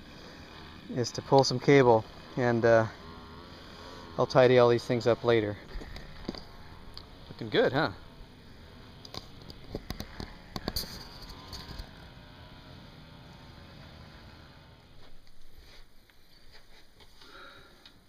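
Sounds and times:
camera handling clicks and knocks: 9.1s - 11.6s.

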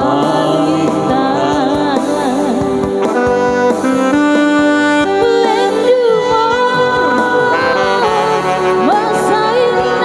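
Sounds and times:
person singing: 0.0s - 3.2s, 5.0s - 10.0s
electronic keyboard melody: 0.0s - 10.0s.

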